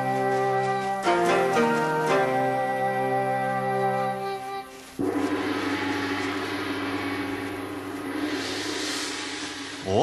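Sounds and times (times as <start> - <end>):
gong ringing: 5.0 - 10.0.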